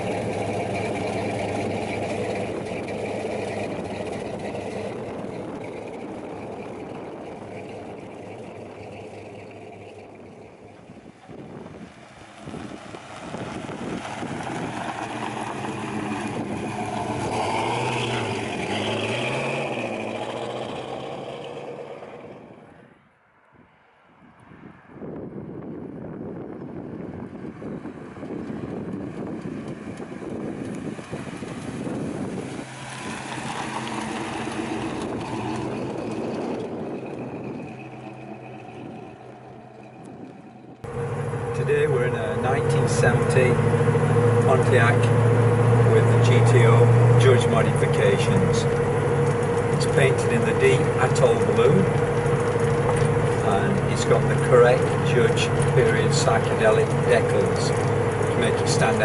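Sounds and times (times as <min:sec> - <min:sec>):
car engine driving past: 0:00.0 - 0:25.0, 0:27.9 - 0:59.0.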